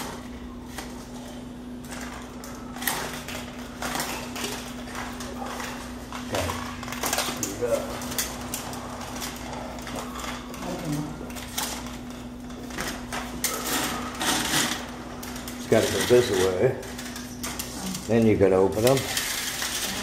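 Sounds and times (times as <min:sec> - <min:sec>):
steady low hum: 0:00.0 - 0:20.0
window blind slats clattering: 0:18.7 - 0:20.0.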